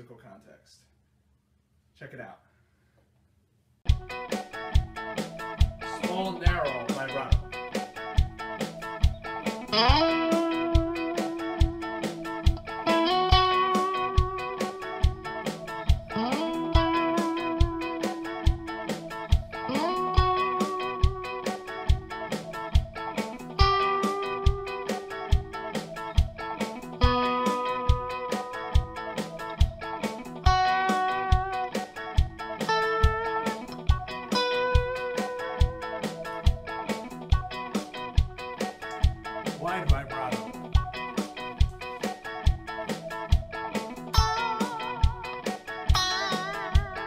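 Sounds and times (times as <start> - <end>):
steady drum beat: 3.9 - 47.0
electric guitar lead with vibrato: 6.6 - 39.6, 40.3 - 47.0.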